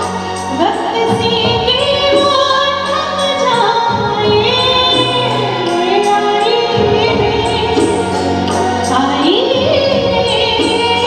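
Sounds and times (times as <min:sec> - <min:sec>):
band accompaniment: 0:00.0 - 0:11.0
woman singing into a microphone: 0:00.0 - 0:11.0.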